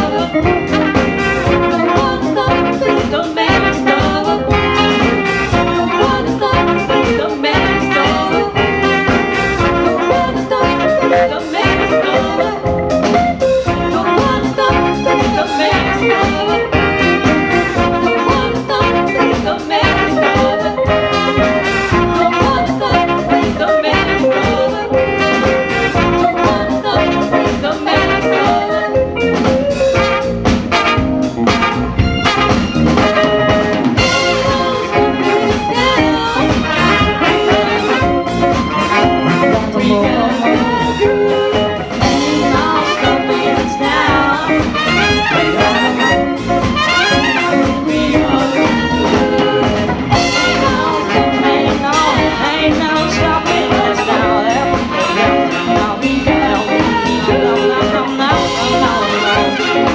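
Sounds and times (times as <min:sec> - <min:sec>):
bass: 0:00.0 - 0:59.9
drum kit: 0:00.0 - 0:59.9
saxophones: 0:00.0 - 0:59.9
trombone: 0:00.0 - 0:59.9
trumpet: 0:00.0 - 0:59.9.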